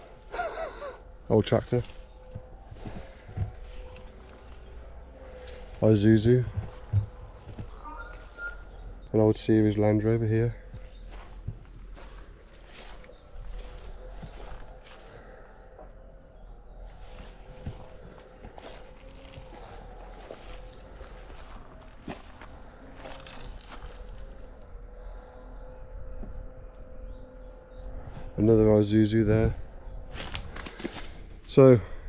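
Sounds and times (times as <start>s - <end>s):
footsteps through dry grass: 0.0s - 9.0s, 10.6s - 15.7s, 16.7s - 24.8s, 29.9s - 31.5s.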